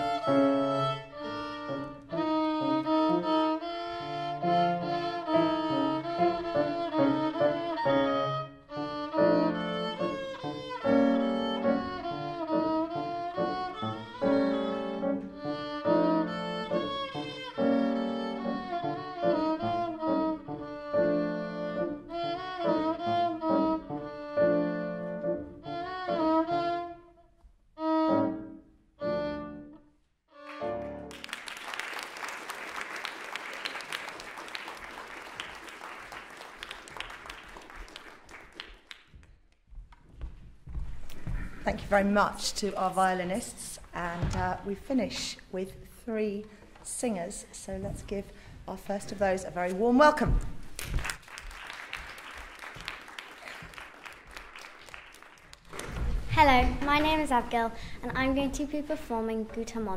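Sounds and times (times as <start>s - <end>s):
violin and piano piece: 0.0s - 31.1s
audience applause: 30.5s - 39.1s, 50.8s - 56.0s.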